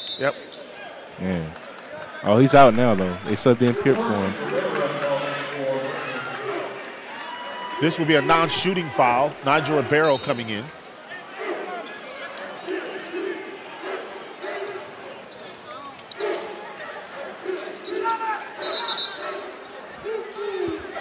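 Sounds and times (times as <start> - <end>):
crowd murmur: 2.4 - 21.0.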